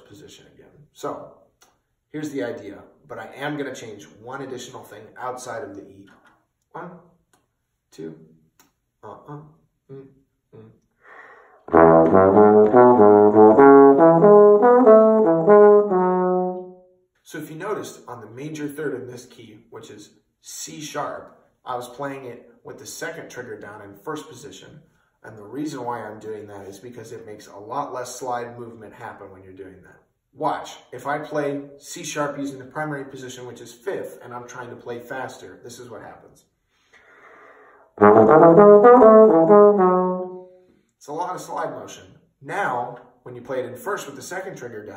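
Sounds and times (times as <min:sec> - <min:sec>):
bass trombone playing bebop: 0:11.7 - 0:16.8, 0:38.0 - 0:40.4.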